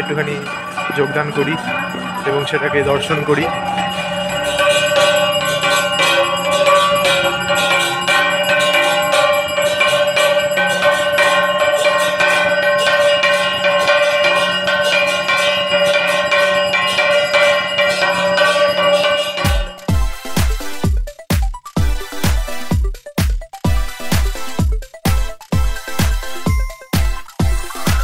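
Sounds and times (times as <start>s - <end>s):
temple bells rung rapidly: 0.0s - 28.0s.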